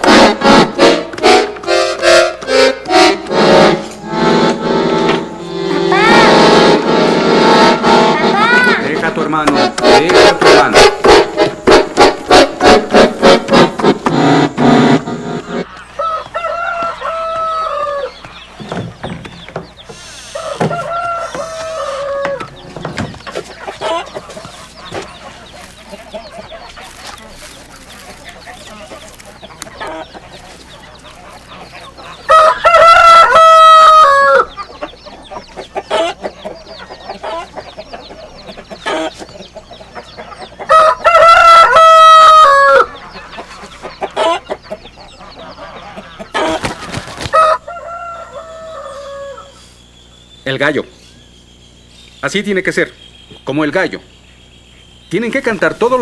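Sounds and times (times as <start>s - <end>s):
chickens clucking: 0.0s - 56.0s
rooster crowing: 16.0s - 18.2s, 20.3s - 22.6s, 32.2s - 34.6s, 40.7s - 43.0s, 47.3s - 49.6s.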